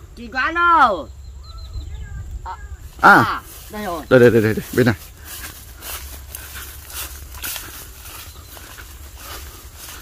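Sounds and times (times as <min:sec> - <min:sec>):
footsteps through tall grass: 0:02.8 - 0:10.0.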